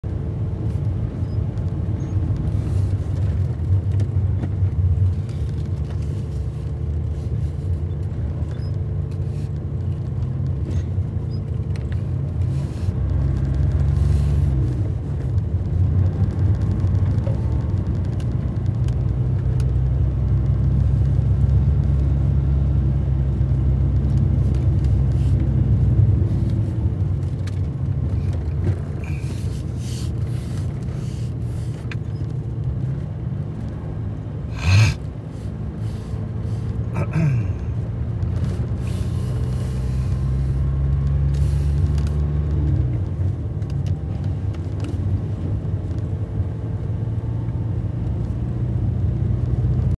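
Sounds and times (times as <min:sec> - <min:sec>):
car engine and tyres rumbling: 0:00.0 - 0:49.9.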